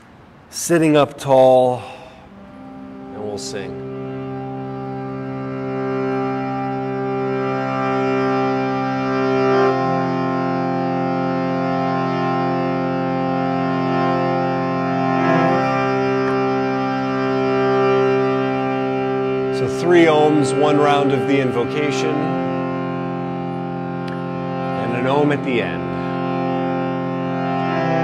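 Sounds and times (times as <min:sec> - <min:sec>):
harmonium drone chord: 0:00.0 - 0:28.0.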